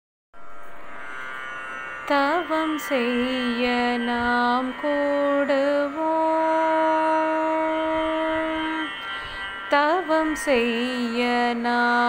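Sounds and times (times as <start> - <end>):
sustained instrumental drone: 0.4 - 12.0.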